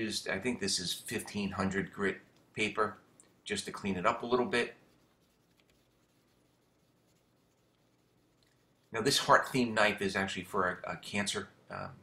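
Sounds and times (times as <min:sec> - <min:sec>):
sandpaper rubbing on metal: 0:04.1 - 0:08.3.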